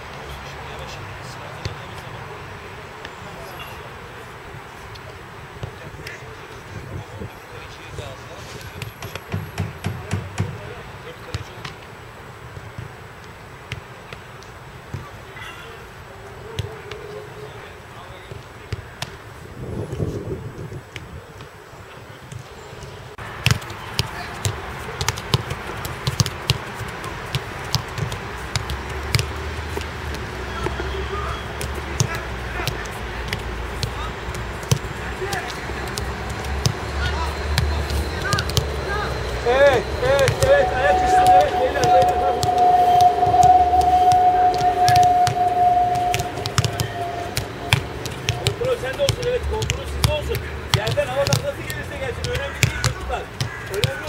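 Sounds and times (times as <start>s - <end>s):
footballs being kicked: 23.4s - 30.8s, 31.5s - 38.7s
person singing ornamented notes: 40.3s - 47.8s.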